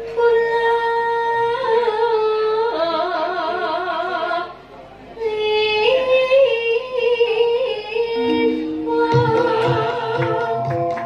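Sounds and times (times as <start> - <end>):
low sustained instrument tones: 8.1 - 9.4
woman singing melismatic phrase: 8.2 - 10.2.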